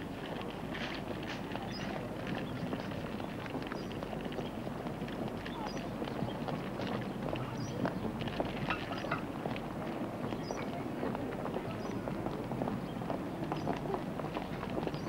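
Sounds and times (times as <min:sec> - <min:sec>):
footsteps on paving stones: 0:00.0 - 0:15.0
indistinct voices of passers-by: 0:00.0 - 0:15.0.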